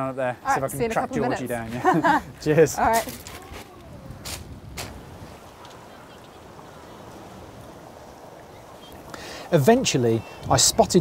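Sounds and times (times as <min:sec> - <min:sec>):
sea ambience on a beach: 0:00.3 - 0:11.0.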